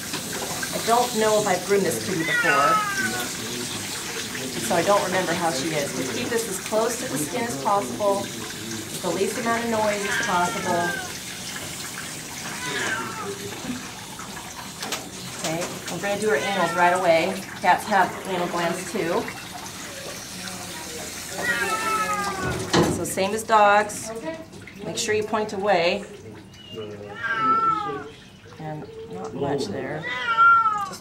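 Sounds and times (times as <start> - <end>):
water spraying onto cat's coat: 0.0 - 23.2
cat meowing: 2.0 - 3.3, 9.8 - 11.2, 12.4 - 13.5, 16.0 - 17.4, 21.3 - 22.6, 27.0 - 28.2, 30.0 - 31.0.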